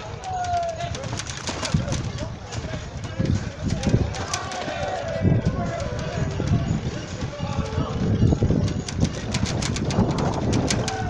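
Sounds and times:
footsteps on brick pavement: 0:00.0 - 0:11.0
indistinct voices: 0:00.0 - 0:11.0.

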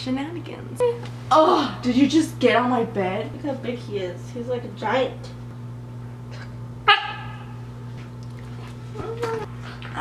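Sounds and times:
puppy yelping: 0:06.9 - 0:07.6.

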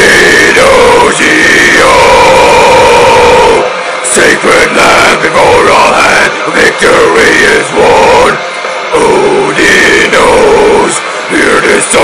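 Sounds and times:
harsh growled vocals: 0:00.0 - 0:08.4, 0:09.0 - 0:12.0.

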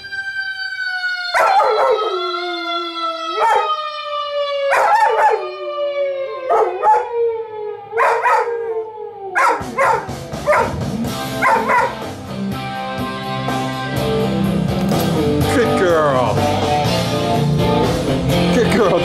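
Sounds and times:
dog howling: 0:01.4 - 0:03.8, 0:04.6 - 0:10.8, 0:11.4 - 0:12.0
song: 0:09.4 - 0:19.0.

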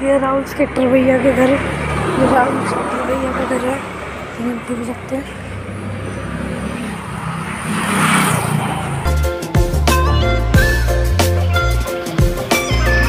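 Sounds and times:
voices: 0:00.0 - 0:09.0
vehicle passing: 0:00.0 - 0:09.6
street traffic: 0:00.0 - 0:13.0.

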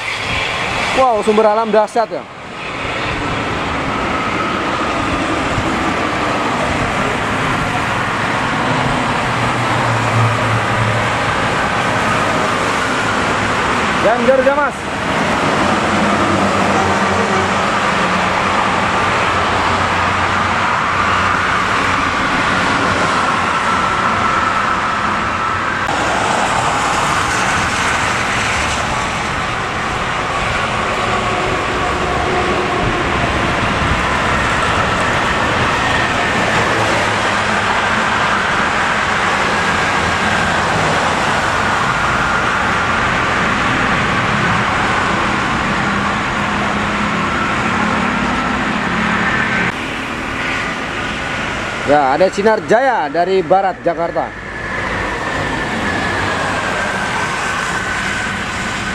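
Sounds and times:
cars and buses passing at speed: 0:00.0 - 0:58.9.

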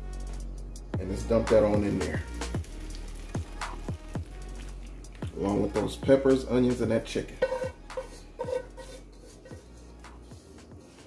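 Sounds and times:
faint music: 0:00.0 - 0:11.0
skillet scraping and knocking: 0:05.4 - 0:10.8.

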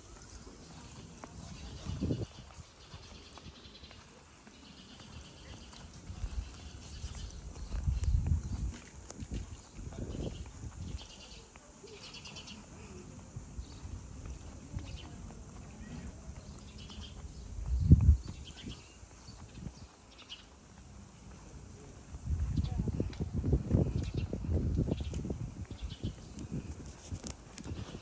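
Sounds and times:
birds chirping: 0:00.0 - 0:23.1.

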